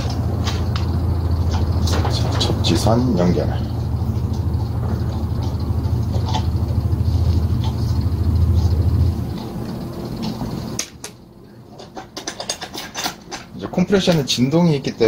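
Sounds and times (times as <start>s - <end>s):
low droning rumble: 0.0s - 11.4s
hand tools tapping metal parts: 11.7s - 14.3s.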